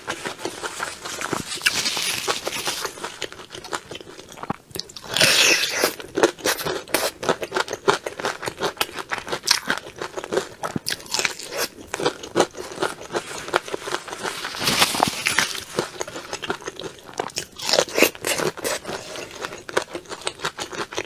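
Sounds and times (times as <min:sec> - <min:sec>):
crunchy chewing: 0:00.0 - 0:21.0.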